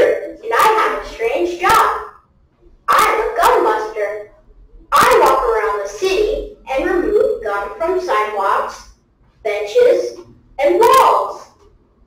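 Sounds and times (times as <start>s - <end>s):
person speaking loudly: 0.0s - 2.2s, 2.9s - 4.3s, 4.9s - 11.6s.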